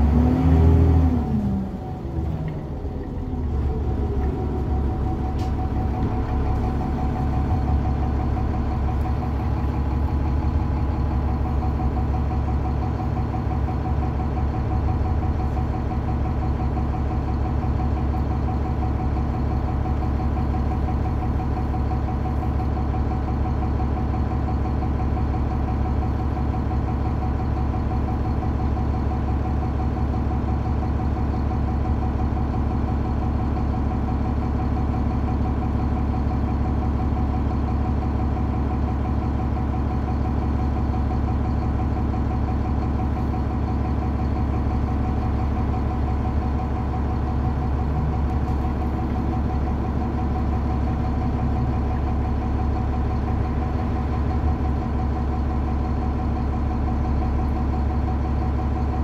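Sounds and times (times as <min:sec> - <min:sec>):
diesel bus engine idling: 0:00.0 - 0:59.0.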